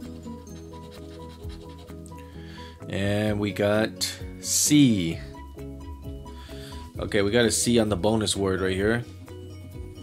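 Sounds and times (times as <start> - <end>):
coin scratching a ticket: 0.0 - 2.0
background music of held notes: 0.0 - 10.0.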